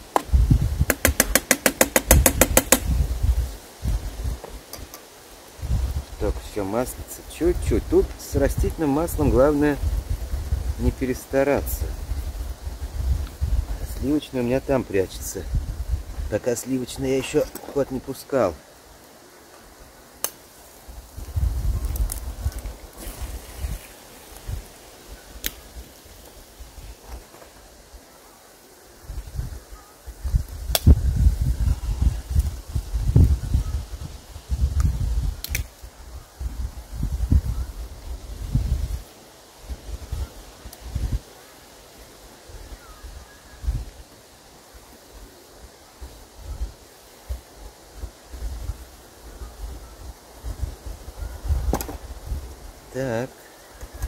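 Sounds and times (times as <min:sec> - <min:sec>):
wind buffeting microphone: 0:00.0 - 0:04.9, 0:05.5 - 0:17.6, 0:20.8 - 0:27.1, 0:29.0 - 0:41.3, 0:46.0 - 0:53.0
sharp clicks: 0:00.9 - 0:02.9, 0:35.4 - 0:35.7.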